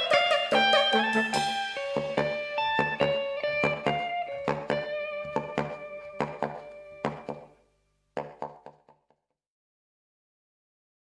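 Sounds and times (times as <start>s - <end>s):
plucked guitar notes: 0.0s - 7.6s.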